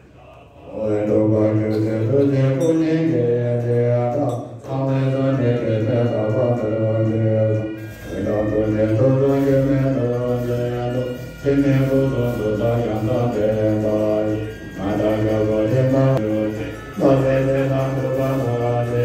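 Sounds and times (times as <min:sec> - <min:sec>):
men chanting low: 0:00.0 - 0:19.0.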